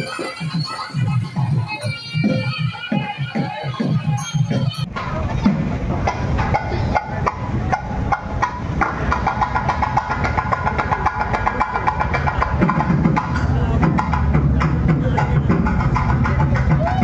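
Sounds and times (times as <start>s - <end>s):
high melodic line: 0.0s - 8.8s
crowd noise: 0.0s - 17.0s
edited-in music: 0.0s - 17.0s
fast drum strokes: 0.0s - 17.0s.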